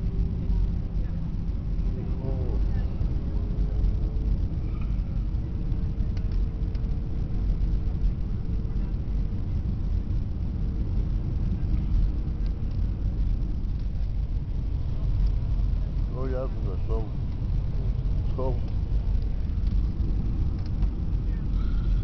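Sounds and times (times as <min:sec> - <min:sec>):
airliner cabin rumble: 0:00.0 - 0:22.0
faint steady hum: 0:00.0 - 0:22.0.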